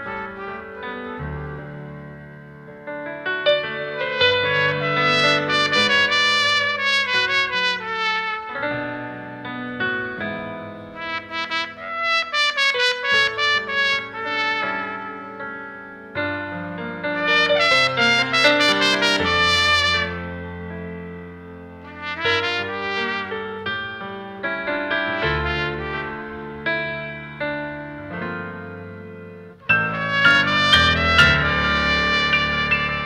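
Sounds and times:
trumpet playing a melody: 0.0s - 2.3s, 4.0s - 9.1s, 10.9s - 15.8s, 17.1s - 20.8s, 21.8s - 23.9s, 25.1s - 26.7s, 29.6s - 33.0s.

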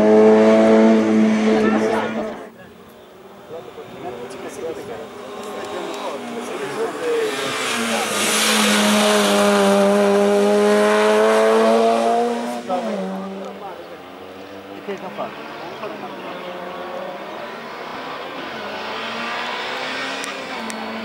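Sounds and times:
race car engine passing: 0.0s - 21.0s.

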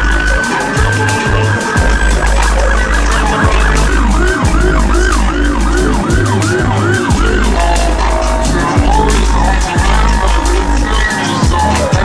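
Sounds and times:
loud music with heavy bass: 0.0s - 12.0s
siren yelping: 0.0s - 12.0s.

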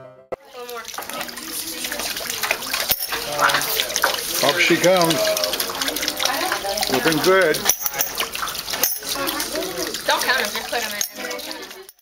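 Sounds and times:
children's voices: 0.4s - 2.8s, 5.2s - 7.0s, 9.0s - 11.9s
water splashing into plastic tub: 0.4s - 11.9s
water pouring onto water wheel: 0.4s - 12.0s.

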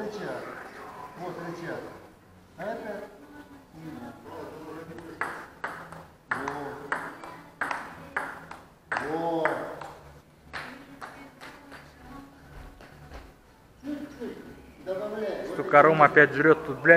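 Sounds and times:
man's voice: 0.0s - 5.6s, 6.3s - 7.2s, 8.9s - 9.9s, 13.8s - 16.9s
table tennis ball hits: 5.0s - 10.7s.

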